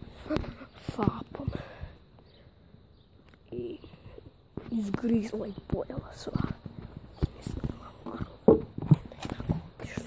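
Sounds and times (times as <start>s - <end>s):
footsteps on wooden planks: 3.9s - 10.0s.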